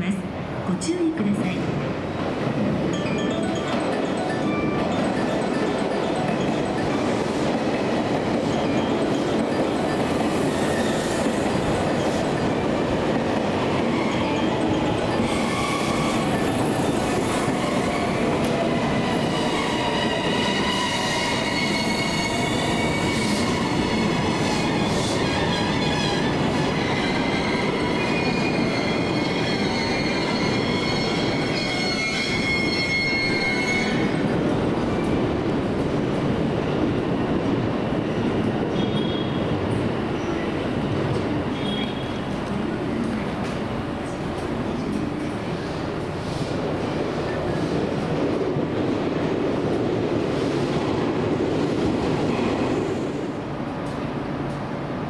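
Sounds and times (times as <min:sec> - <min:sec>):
train wheels rumbling on rail: 0:01.2 - 0:55.0
high brake squeal: 0:26.8 - 0:34.1.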